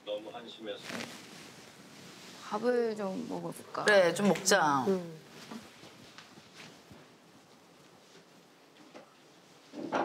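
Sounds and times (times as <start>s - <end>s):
faint rustling of movement: 0.4s - 9.8s.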